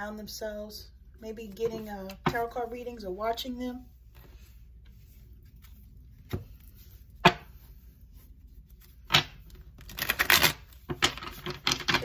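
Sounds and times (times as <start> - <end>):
cards being shuffled: 8.6 - 12.0.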